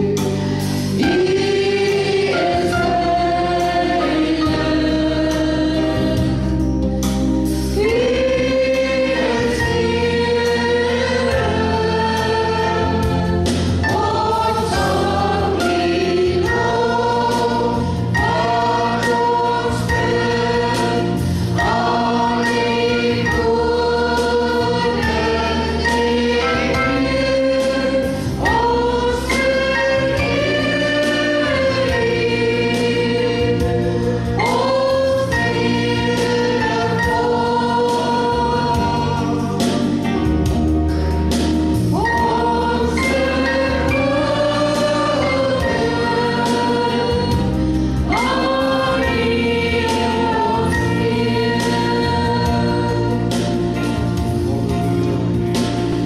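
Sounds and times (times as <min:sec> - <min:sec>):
voices singing together: 0:00.0 - 0:06.8, 0:07.4 - 0:40.6, 0:41.3 - 0:56.0
bass guitar: 0:00.0 - 0:56.0
steady drum beat: 0:07.8 - 0:56.0.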